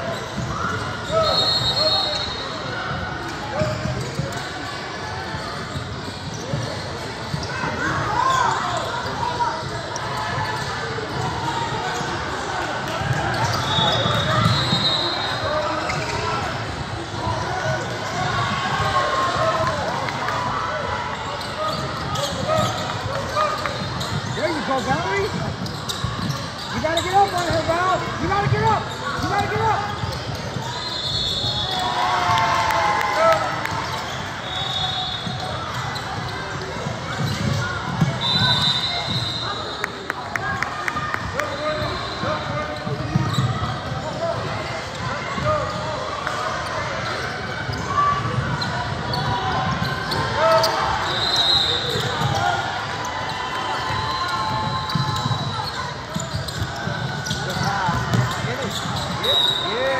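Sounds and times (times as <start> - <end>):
people talking and calling out: 0.0 - 59.9
sneakers squeaking: 0.0 - 59.9
basketball bouncing: 54.6 - 59.2.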